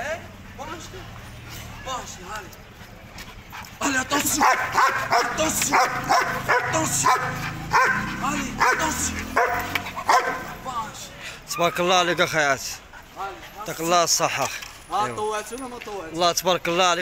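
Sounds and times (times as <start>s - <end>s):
dog barking rapidly: 4.2s - 10.6s.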